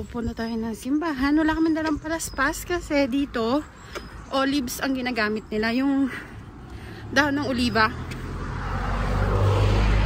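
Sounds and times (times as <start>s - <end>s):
vehicle engine and tyre noise: 0.0s - 10.0s.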